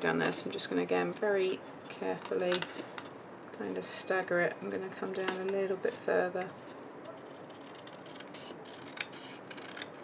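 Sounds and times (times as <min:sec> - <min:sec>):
scissors snipping card: 0:07.3 - 0:10.0.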